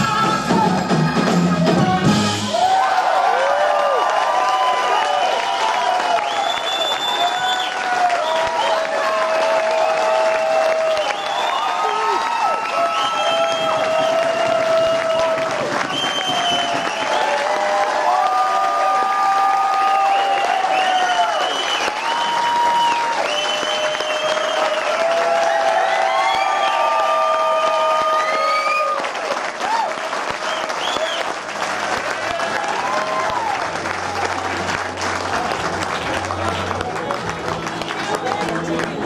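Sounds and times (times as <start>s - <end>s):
audience cheering: 0.0s - 39.0s
audience clapping: 0.0s - 39.0s.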